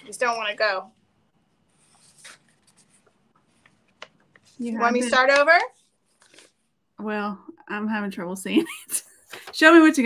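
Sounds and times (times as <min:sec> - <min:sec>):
paper rustling: 0:01.7 - 0:06.8.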